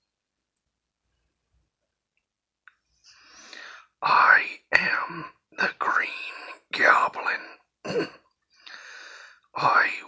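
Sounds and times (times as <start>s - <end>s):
person making breathy whisper: 3.2s - 7.6s, 9.6s - 10.0s.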